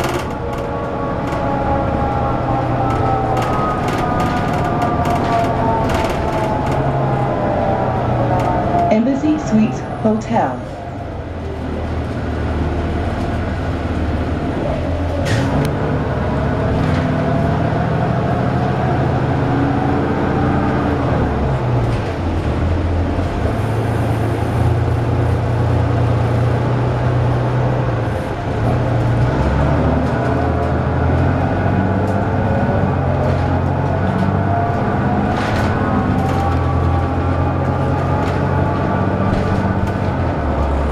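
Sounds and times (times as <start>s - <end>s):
transmission whine: 0.0s - 11.8s
bus diesel engine running: 0.0s - 40.9s.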